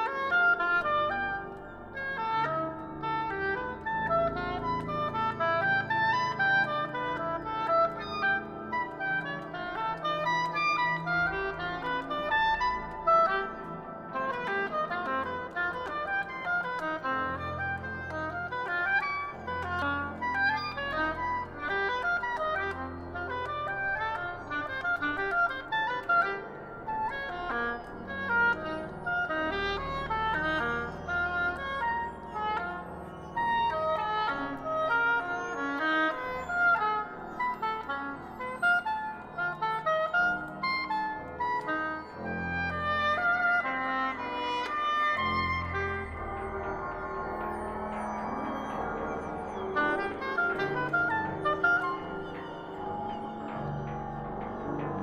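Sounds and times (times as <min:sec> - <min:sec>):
oboe playing rapid runs: 0:00.0 - 0:55.0.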